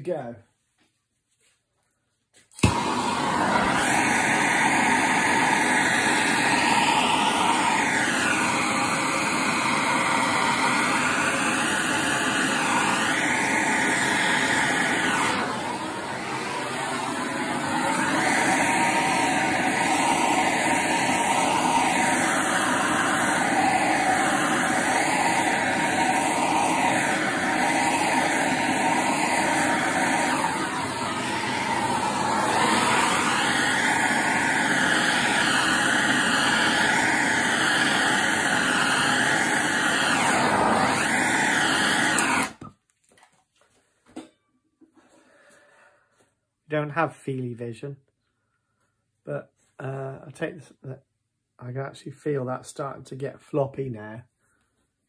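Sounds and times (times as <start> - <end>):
heat gun blowing: 2.5 - 42.7.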